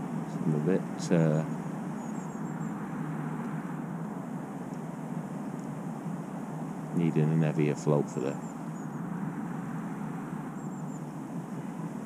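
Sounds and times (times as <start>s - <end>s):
low background rumble: 0.0s - 12.0s
faint high chirp: 1.0s - 3.9s, 8.1s - 12.0s.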